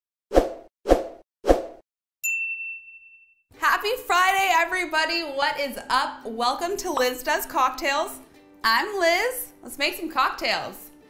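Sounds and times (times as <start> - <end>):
high bell-like ding: 2.2 - 3.4.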